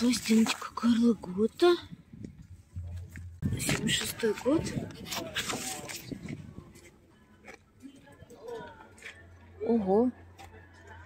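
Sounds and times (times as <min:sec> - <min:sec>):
faint background voices: 0:02.5 - 0:11.0.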